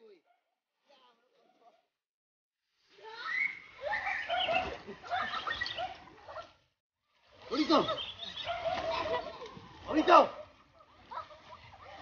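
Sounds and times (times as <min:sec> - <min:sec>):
water splashing: 0:02.8 - 0:12.0
people calling out: 0:02.9 - 0:06.0
people laughing: 0:03.9 - 0:06.0, 0:08.7 - 0:10.1.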